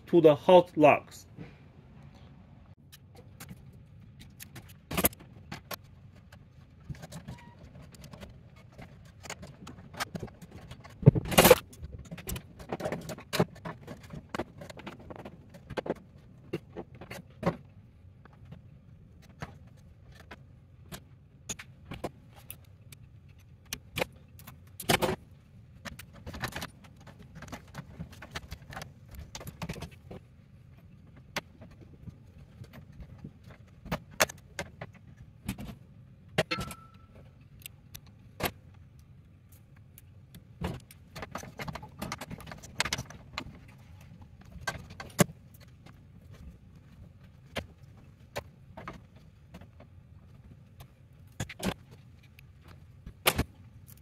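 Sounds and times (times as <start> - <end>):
low steady hum: 0.0 - 54.0
tools clicking and clinking on metal: 36.4 - 38.6.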